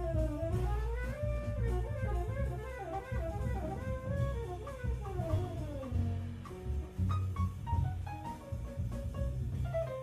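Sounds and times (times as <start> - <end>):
live jazz band: 0.0 - 10.0
walking double bass: 0.0 - 10.0.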